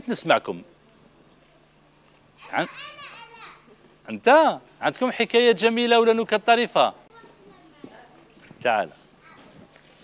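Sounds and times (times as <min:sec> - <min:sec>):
children calling out: 0:02.4 - 0:03.8.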